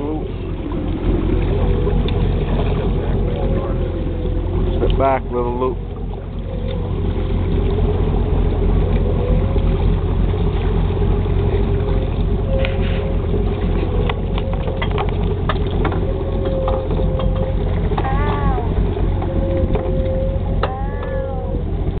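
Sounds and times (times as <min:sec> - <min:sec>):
boat motor running: 0:00.0 - 0:22.0
water noise: 0:00.0 - 0:22.0.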